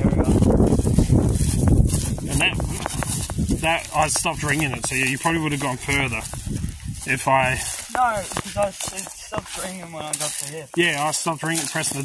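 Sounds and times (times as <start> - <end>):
wind buffeting microphone: 0.0 - 10.1
person speaking: 3.6 - 6.3, 7.0 - 12.0.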